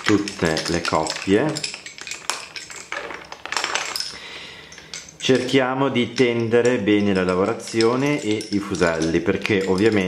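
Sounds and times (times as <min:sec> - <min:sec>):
lace bobbins clicking: 0:00.0 - 0:10.0.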